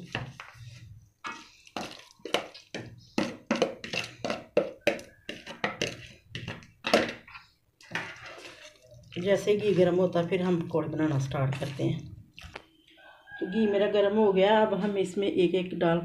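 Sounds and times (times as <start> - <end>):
wet squishes of hand in batter: 0.0 - 4.4, 7.4 - 12.7.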